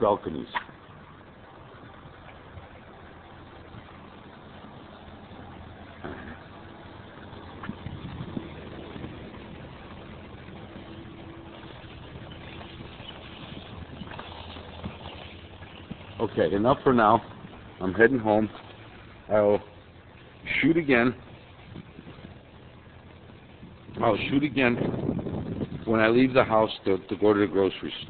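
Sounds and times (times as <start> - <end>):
street background noise: 0.0 - 28.0
vehicle engine humming: 0.0 - 28.0.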